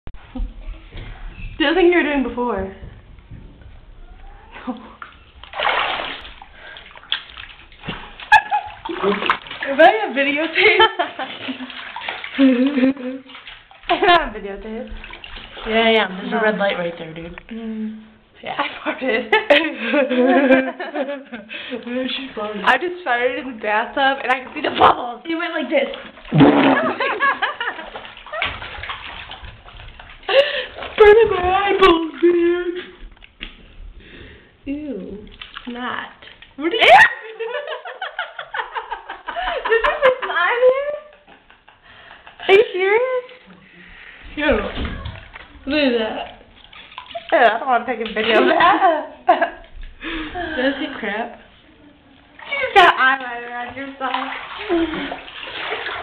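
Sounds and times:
bathwater splashing and sloshing: 0:00.2 - 0:56.0
voice squeaking: 0:04.0 - 0:04.8
laughter: 0:08.3 - 0:09.1, 0:10.6 - 0:11.8, 0:18.9 - 0:21.5, 0:26.4 - 0:28.6, 0:37.0 - 0:42.6, 0:48.3 - 0:49.7.

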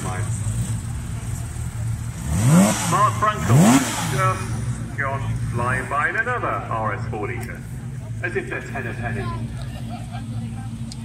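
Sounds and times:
car engine revving: 0:00.0 - 0:11.0.

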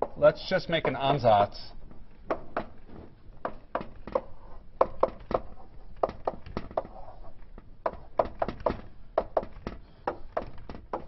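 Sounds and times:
chalk tapping on blackboard: 0:03.4 - 0:11.0.

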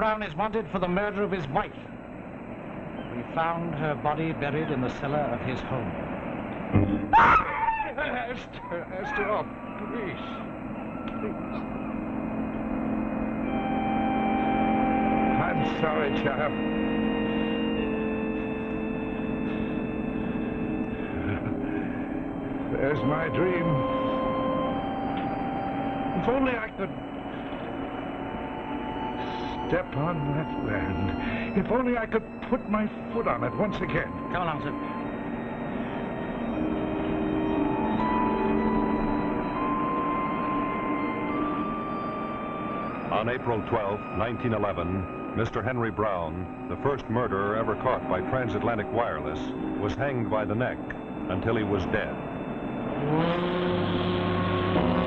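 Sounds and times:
steady low hum: 0:00.0 - 0:55.0
slow dramatic music: 0:08.9 - 0:55.0.

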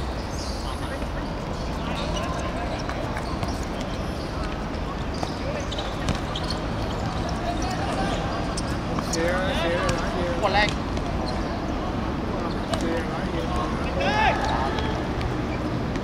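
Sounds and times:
players calling out: 0:00.0 - 0:15.8
outdoor background noise: 0:00.0 - 0:16.0
loud shout: 0:13.8 - 0:15.2.

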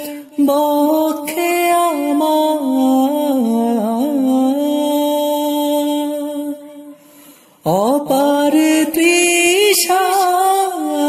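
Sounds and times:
man singing: 0:00.0 - 0:07.0, 0:07.6 - 0:11.0.

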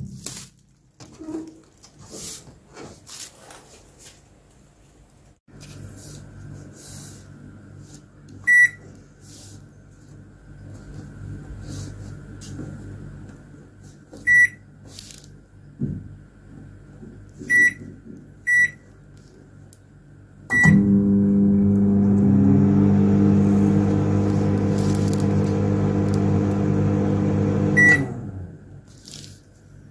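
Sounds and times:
microwave keypad beeps: 0:08.5 - 0:08.8, 0:17.5 - 0:17.8, 0:18.5 - 0:18.8, 0:20.5 - 0:20.9, 0:27.8 - 0:28.1
microwave oven humming: 0:20.1 - 0:28.8.

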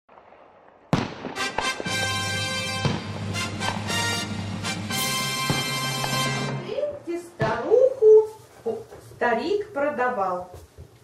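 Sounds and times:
fireworks crackling: 0:00.1 - 0:11.0
loud firework bang: 0:00.9 - 0:06.6
music: 0:01.4 - 0:06.8.

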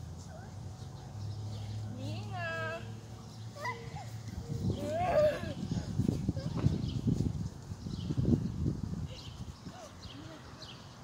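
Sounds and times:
child's high-pitched calls: 0:03.6 - 0:04.2.

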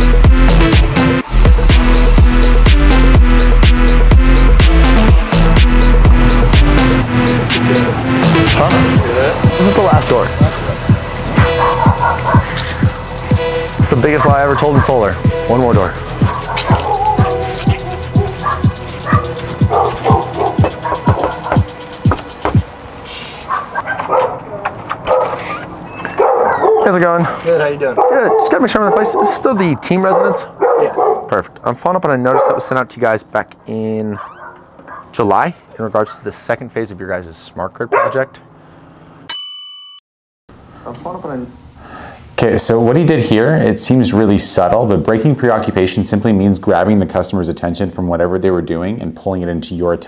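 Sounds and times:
music with deep beat: 0:00.0 - 0:22.7
dog barking: 0:11.4 - 0:12.6, 0:14.0 - 0:15.0, 0:16.2 - 0:21.6, 0:23.5 - 0:27.0, 0:27.9 - 0:31.4, 0:32.3 - 0:32.8, 0:34.2 - 0:35.2, 0:37.9 - 0:38.3
bright bell-like ding: 0:39.3 - 0:40.0.

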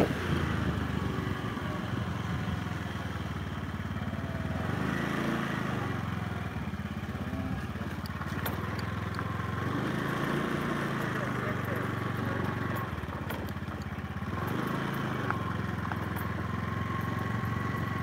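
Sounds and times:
small motorcycle engine running: 0:00.0 - 0:18.0.

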